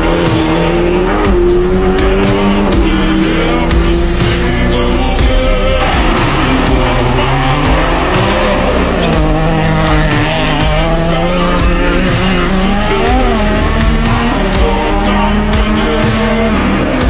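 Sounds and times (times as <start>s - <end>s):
music playing: 0.0s - 17.0s
rally car engine revving past: 5.7s - 17.0s.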